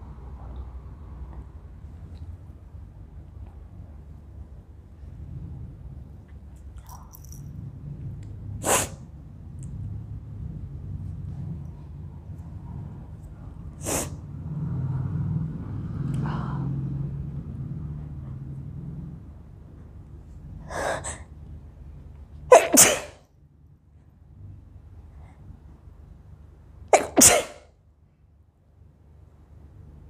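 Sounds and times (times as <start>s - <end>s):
woman sneezing: 22.5s - 23.2s, 27.0s - 27.7s.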